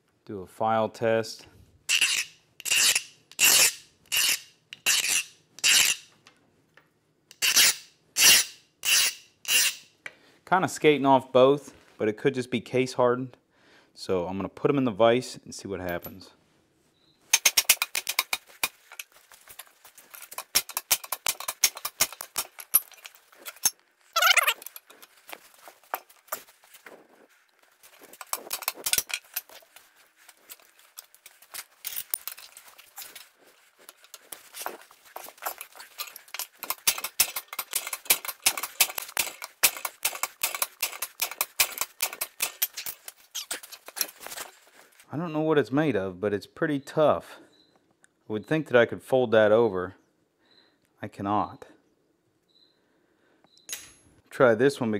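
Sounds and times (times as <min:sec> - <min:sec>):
bench vise clicking and rattling: 0:17.4 - 0:23.8, 0:28.0 - 0:29.6, 0:35.2 - 0:44.2
falling squeak: 0:22.8 - 0:25.1, 0:42.7 - 0:43.9.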